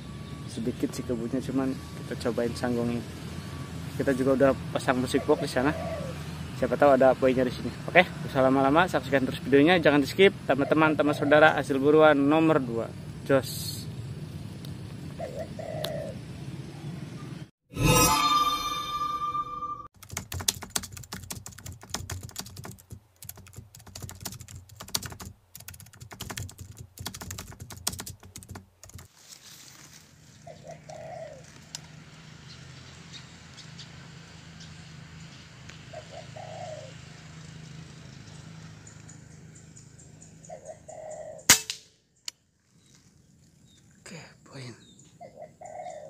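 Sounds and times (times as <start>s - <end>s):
dove cooing: 5.0s - 6.4s, 10.6s - 11.5s, 15.1s - 16.2s, 30.4s - 31.6s, 35.9s - 37.1s, 40.4s - 41.5s, 45.2s - 46.0s
rapid typewriter-style clicking: 20.0s - 29.1s.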